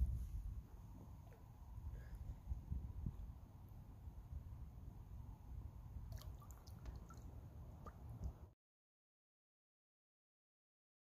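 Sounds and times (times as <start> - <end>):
low microphone rumble: 0.0 - 0.7
water dripping and splashing: 6.1 - 8.4.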